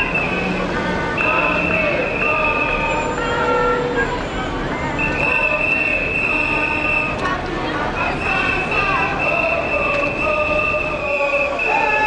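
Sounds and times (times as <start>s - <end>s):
high-pitched whistling tones: 0.0s - 3.6s, 5.0s - 7.2s, 8.0s - 12.0s
loud street noise: 0.0s - 12.0s.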